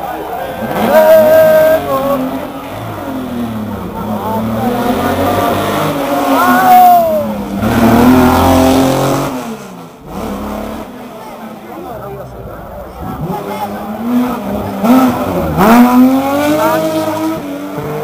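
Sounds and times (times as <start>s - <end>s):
rally car engine revving past: 7.4s - 11.0s, 13.0s - 18.0s.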